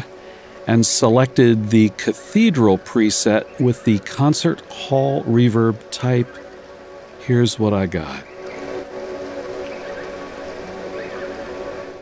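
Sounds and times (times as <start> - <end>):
reverberant water drone: 0.0 - 12.0.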